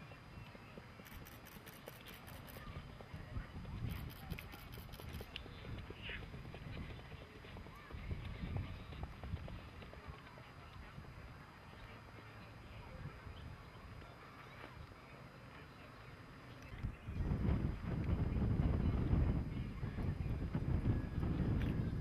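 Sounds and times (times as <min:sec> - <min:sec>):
horse hooves on gravel: 0:00.5 - 0:12.7.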